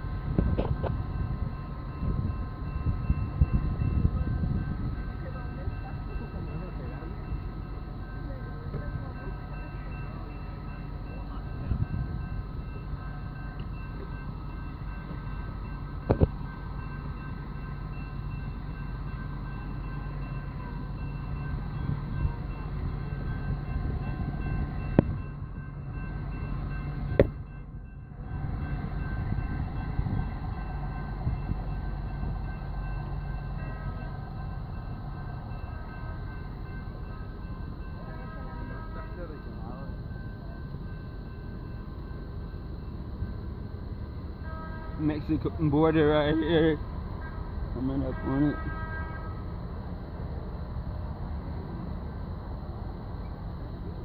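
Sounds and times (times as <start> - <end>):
transit vehicles droning: 0.0 - 54.0.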